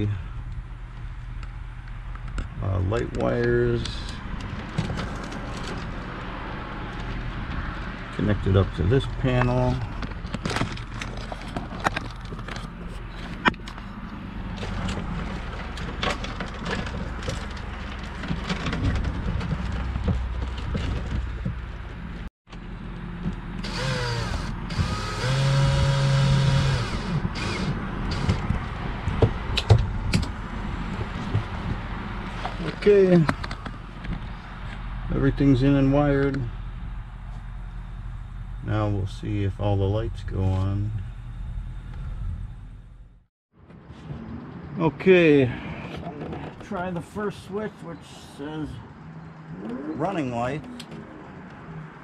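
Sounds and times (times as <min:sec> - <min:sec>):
cordless drill driving screws: 0:23.6 - 0:28.4
low background rumble: 0:33.3 - 0:43.3.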